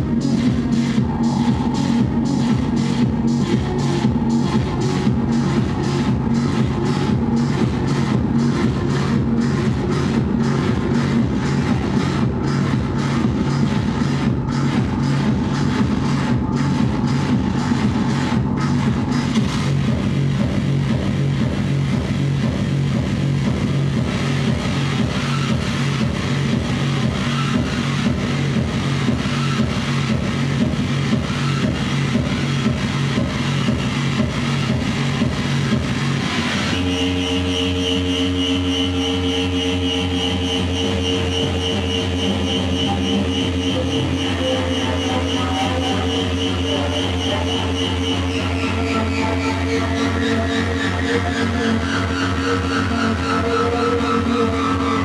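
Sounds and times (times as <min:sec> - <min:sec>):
pulsing low electronic drone: 0:00.0 - 0:55.0
sustained layered electronic tones: 0:23.0 - 0:55.0.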